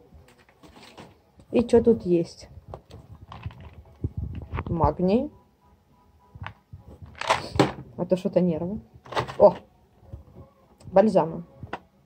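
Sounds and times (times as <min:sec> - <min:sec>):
plastic bottle rustling in cardboard box: 0:00.3 - 0:01.2, 0:02.7 - 0:04.5.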